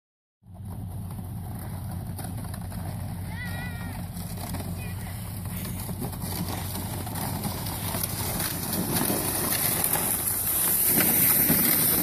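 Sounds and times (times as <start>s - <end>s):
steady low rumble: 0.4s - 12.0s
child's distant wavering shout: 3.3s - 4.0s.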